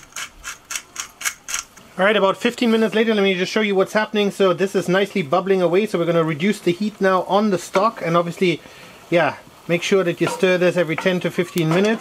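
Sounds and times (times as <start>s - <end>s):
pepper mill grinding: 0.0s - 1.9s.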